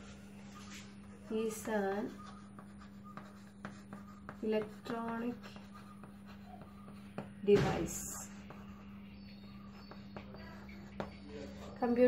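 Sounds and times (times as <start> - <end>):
chalk tapping and scraping: 0.6 - 11.7.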